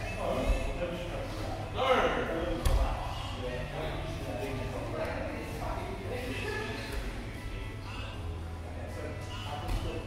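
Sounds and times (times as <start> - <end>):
voices in large room: 0.0 - 10.0.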